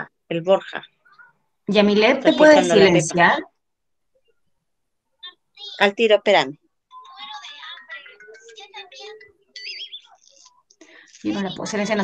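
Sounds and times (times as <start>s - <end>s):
television: 0.0s - 12.0s
muffled voices: 6.9s - 12.0s.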